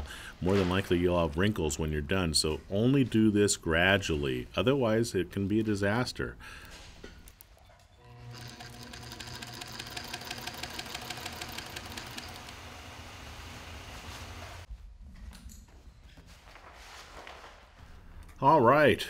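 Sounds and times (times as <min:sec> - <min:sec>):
sewing machine stitching: 0:08.0 - 0:12.7.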